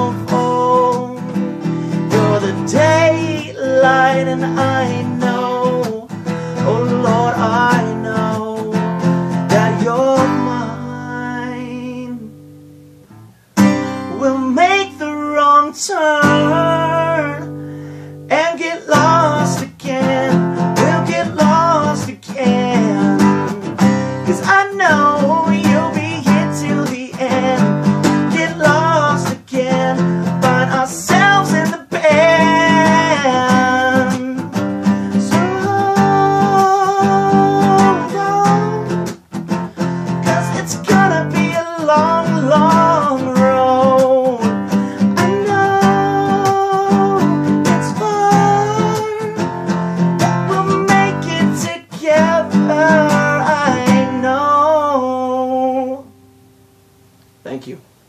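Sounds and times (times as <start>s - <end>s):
man singing: 0.0s - 12.4s, 13.8s - 56.2s
acoustic guitar strumming: 0.0s - 57.6s.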